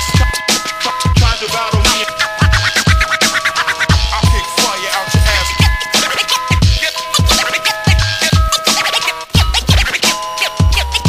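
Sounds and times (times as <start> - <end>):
hip-hop drum beat: 0.0 - 11.0
turntable scratching: 0.0 - 11.0.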